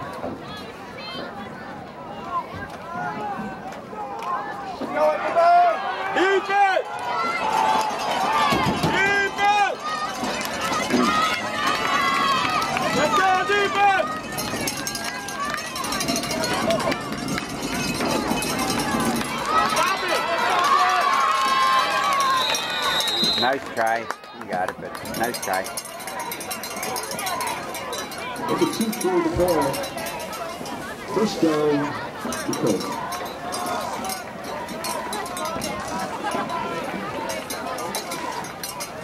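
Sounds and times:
people shouting and talking: 0.0 - 39.0
referee's whistle: 22.2 - 23.6.

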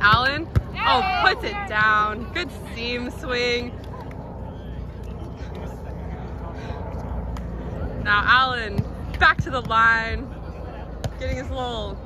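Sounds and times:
distant people talking: 0.0 - 12.0
low outdoor rumble: 0.0 - 12.0.

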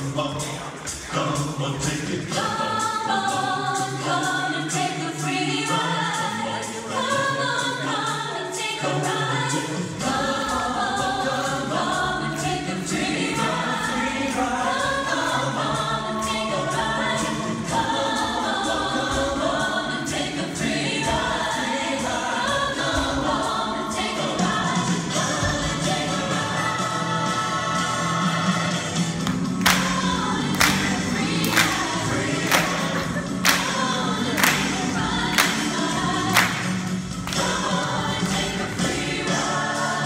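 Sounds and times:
choir singing in parts: 0.0 - 40.0.

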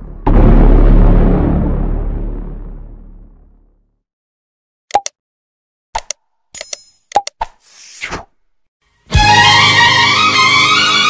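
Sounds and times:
sharp mouse clicks: 4.9 - 5.1, 6.0 - 8.0.

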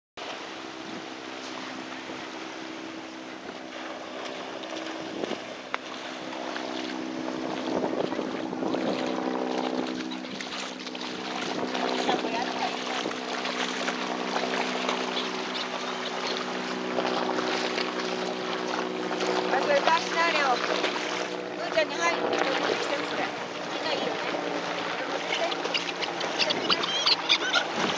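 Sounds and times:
dogs splashing through water: 0.2 - 27.9
steady low drone: 0.2 - 27.9
wind buffeting microphone: 0.8 - 27.9.

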